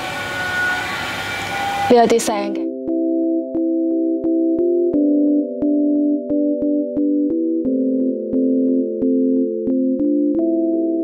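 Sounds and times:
construction machinery din: 0:00.0 - 0:02.6.

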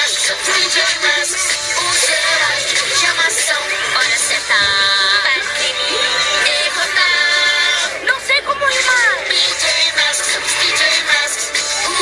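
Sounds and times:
person singing: 0:00.0 - 0:08.1
backing music: 0:00.0 - 0:12.0.

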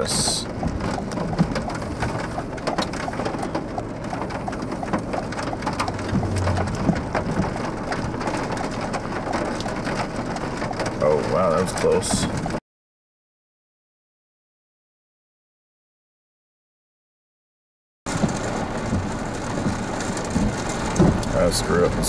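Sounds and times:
rain hitting a windshield: 0:00.0 - 0:12.6, 0:18.1 - 0:22.0.

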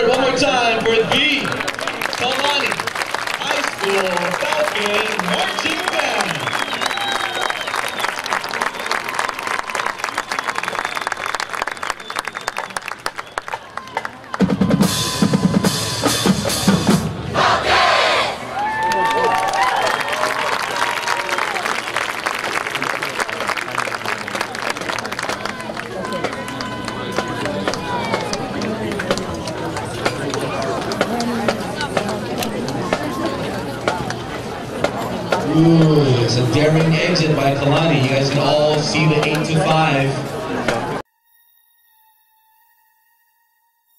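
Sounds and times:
crowd applauding and cheering: 0:00.0 - 0:15.9, 0:18.4 - 0:33.2
marching drumline cadence: 0:09.6 - 0:18.5, 0:21.7 - 0:41.0.

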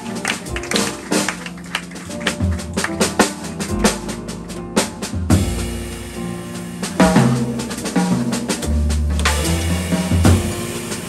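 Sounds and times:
drum kit cymbals and drums: 0:00.0 - 0:11.0
piano: 0:00.0 - 0:11.0
upright double bass: 0:00.0 - 0:11.0.

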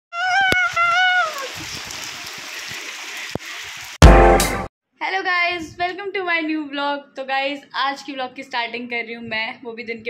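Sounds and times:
heavy rain on concrete roof: 0:00.2 - 0:04.0.

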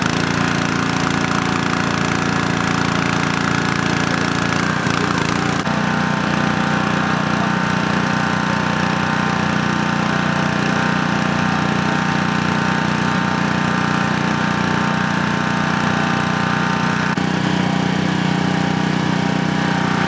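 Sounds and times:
small gasoline engine running: 0:00.0 - 0:20.0.

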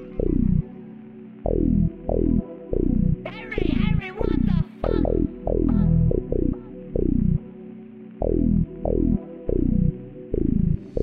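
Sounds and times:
deep bass notes gliding down: 0:01.5 - 0:07.4, 0:08.2 - 0:11.0.

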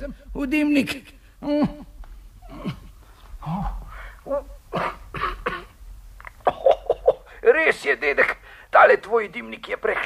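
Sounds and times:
person coughing: 0:04.7 - 0:05.8, 0:06.4 - 0:07.4.

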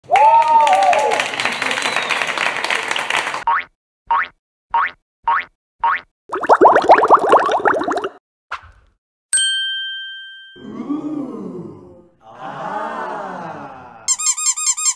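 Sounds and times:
bright bell-like ding: 0:09.4 - 0:10.6.

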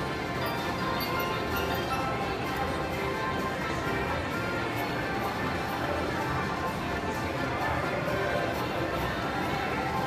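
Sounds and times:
slot machine music: 0:00.0 - 0:08.6.

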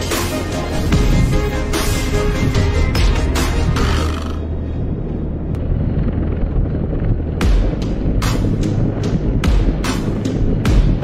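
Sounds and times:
helicopter rotor and engine rumble: 0:00.0 - 0:11.0.

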